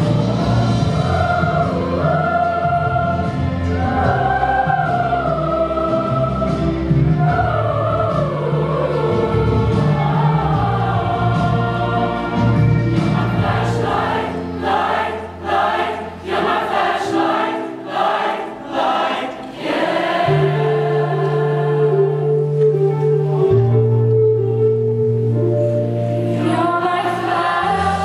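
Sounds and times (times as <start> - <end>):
choir singing in unison: 0.0 - 22.6, 26.0 - 28.0.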